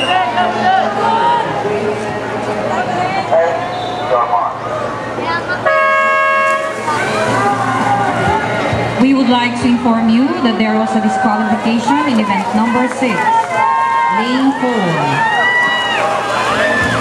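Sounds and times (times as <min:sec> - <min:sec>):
crowd voices: 0:00.0 - 0:17.0.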